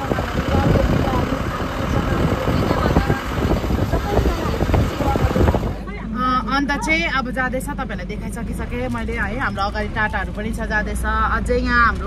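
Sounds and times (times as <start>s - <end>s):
vehicle road and engine rumble: 0.0s - 12.0s.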